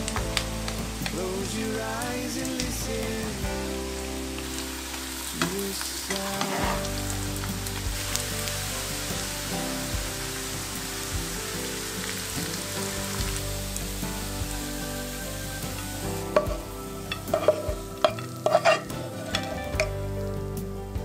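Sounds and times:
meat sizzling in frying pan: 0.0s - 3.2s, 4.0s - 19.9s
spatula scraping and tapping pan: 16.4s - 19.9s.

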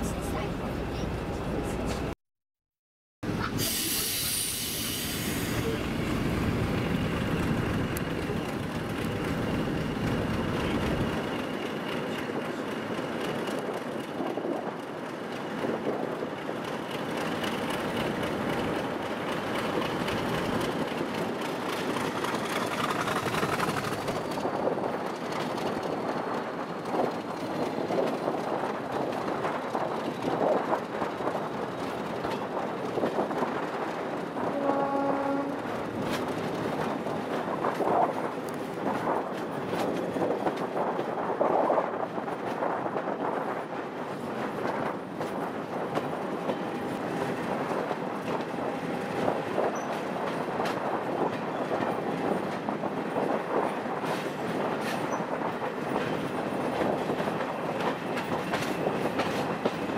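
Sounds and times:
train wheels rumbling on rail: 3.2s - 59.9s
loud hiss: 3.6s - 5.8s.

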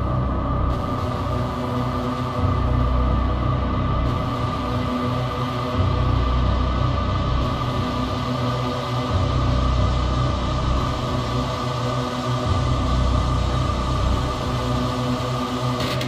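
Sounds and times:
droning synth tones: 0.0s - 16.0s.

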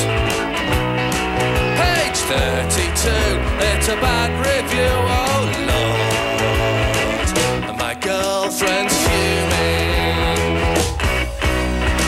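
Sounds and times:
rock band playing: 0.0s - 12.0s
person singing: 1.6s - 12.0s.

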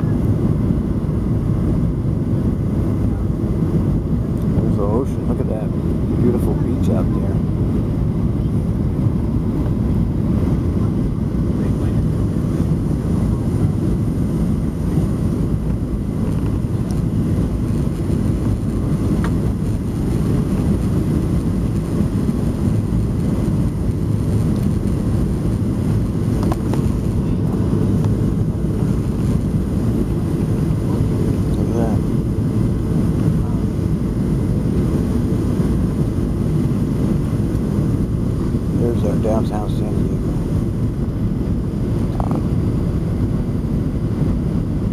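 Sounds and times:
jet engine roar in cabin: 0.0s - 44.9s
rushing airflow: 0.0s - 44.9s.

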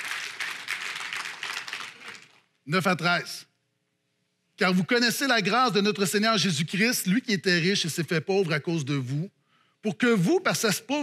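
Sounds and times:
congregation clapping: 0.0s - 2.6s.

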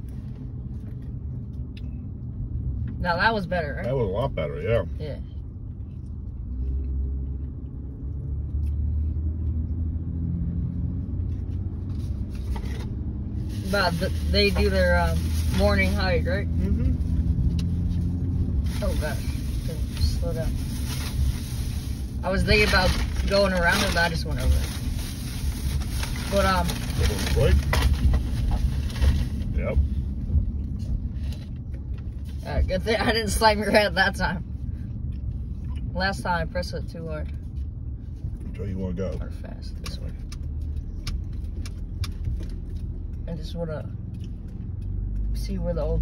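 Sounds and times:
car engine and tyre rumble: 0.0s - 46.0s.

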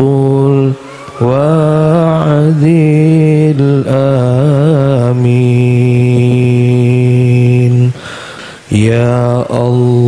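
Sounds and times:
man chanting into a microphone: 0.0s - 8.1s, 8.7s - 10.0s.

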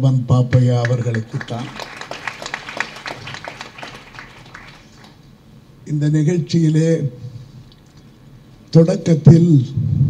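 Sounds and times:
audience clapping: 0.6s - 5.3s.

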